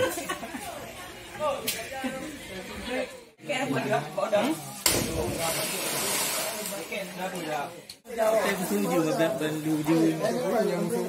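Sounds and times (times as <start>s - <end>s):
people talking and calling out: 0.0s - 11.0s.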